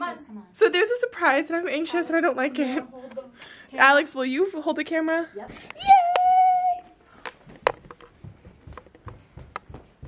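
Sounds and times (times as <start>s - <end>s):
woman shouting yeah: 5.8s - 6.9s
footsteps and handling clicks: 7.1s - 10.0s.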